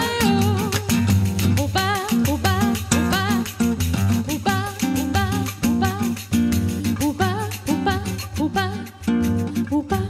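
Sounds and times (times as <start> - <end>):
hand percussion beat: 0.0 - 10.0
plucked acoustic guitar: 0.0 - 10.0
woman singing with vibrato: 0.0 - 10.0.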